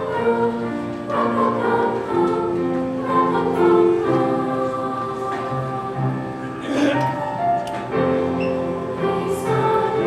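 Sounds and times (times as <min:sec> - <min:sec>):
choir singing in harmony: 0:00.0 - 0:10.0.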